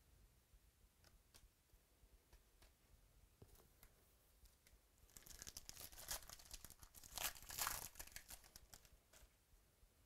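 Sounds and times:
foil wrapper tearing and crinkling: 5.1 - 8.9.

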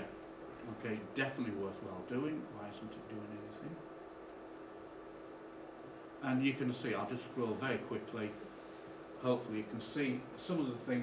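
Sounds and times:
faint steady hiss: 0.0 - 11.0
low steady hum: 0.0 - 11.0.

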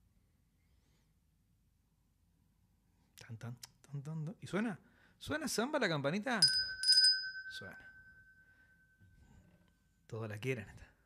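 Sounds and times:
small bell ringing: 6.4 - 9.2.

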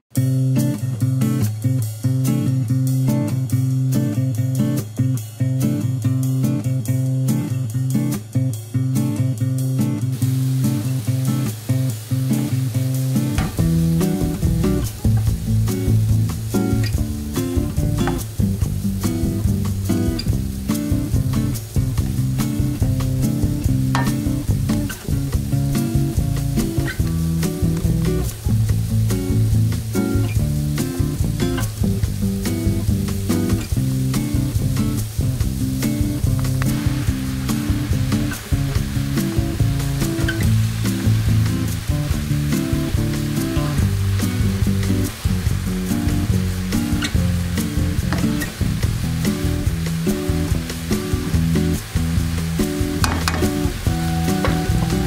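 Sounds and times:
acoustic guitar music with beat: 0.1 - 55.0
loud frying hiss: 0.2 - 55.0
vegetables sizzling in a frying pan: 9.6 - 55.0.

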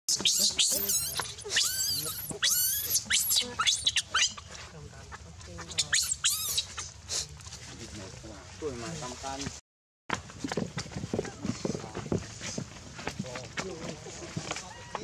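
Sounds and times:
baby monkey shrieking: 0.1 - 4.5, 5.7 - 6.9.

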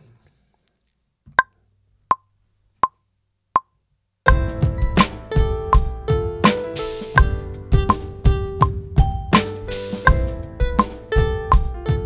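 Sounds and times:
drum kit playing: 4.3 - 12.0.

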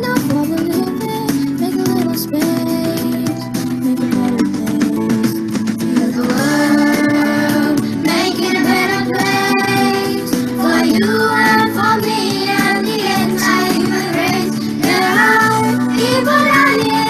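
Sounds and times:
instrumental accompaniment: 0.0 - 17.0
children singing slow song: 5.9 - 17.0.

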